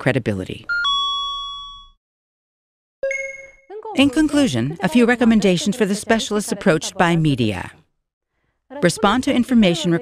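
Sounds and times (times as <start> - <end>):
bell-like chime: 0.7 - 2.0, 3.0 - 3.7.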